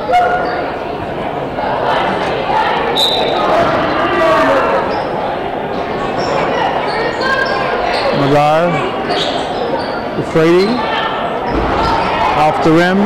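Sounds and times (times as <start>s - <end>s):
voices of players and crowd: 0.0s - 13.0s.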